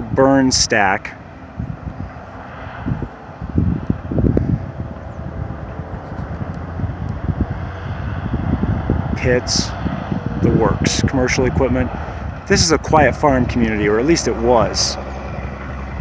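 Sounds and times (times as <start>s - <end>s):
low outdoor rumble: 0.0s - 16.0s
wind buffeting microphone: 0.0s - 16.0s.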